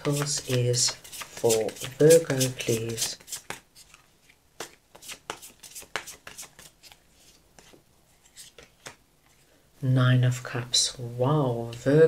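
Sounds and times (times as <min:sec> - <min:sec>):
cards being shuffled: 0:00.0 - 0:09.0.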